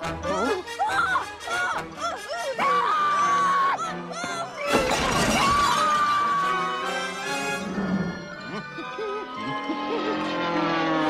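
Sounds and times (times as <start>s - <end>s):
orchestral film music: 0.0s - 11.0s
crash with shattering: 4.7s - 6.2s.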